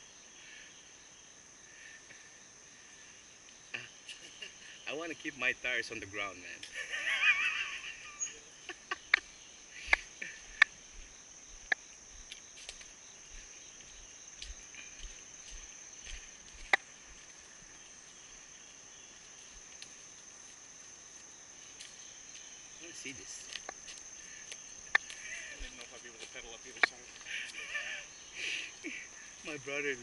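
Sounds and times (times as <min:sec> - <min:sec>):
insects droning: 0:00.0 - 0:30.0
person laughing: 0:03.8 - 0:04.8, 0:06.7 - 0:10.6, 0:25.2 - 0:25.7, 0:27.3 - 0:29.4.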